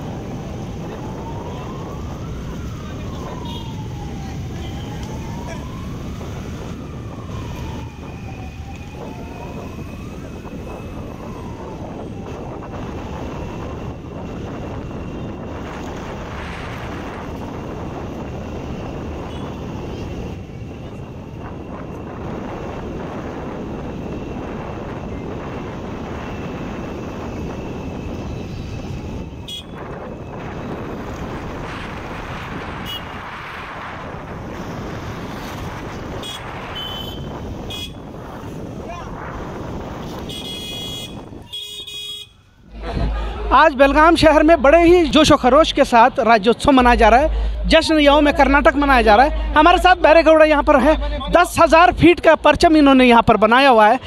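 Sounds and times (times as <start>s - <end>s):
siren wailing: 0.0s - 54.0s
street noise: 0.0s - 54.0s
crowd voices: 42.6s - 52.8s.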